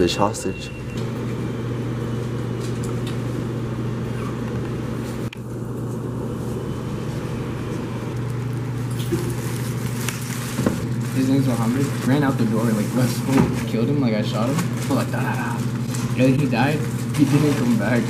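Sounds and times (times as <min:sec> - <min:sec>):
low mechanical hum: 0:00.0 - 0:18.0.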